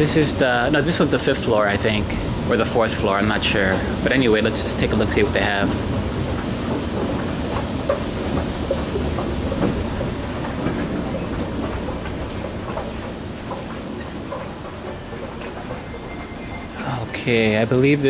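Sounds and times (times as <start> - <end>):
escalator rumble and clatter: 0.0 - 18.0
store background noise: 0.0 - 18.0.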